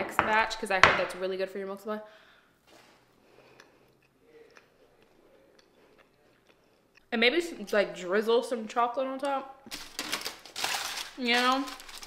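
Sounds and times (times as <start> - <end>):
chewing soft food: 3.2 - 7.1.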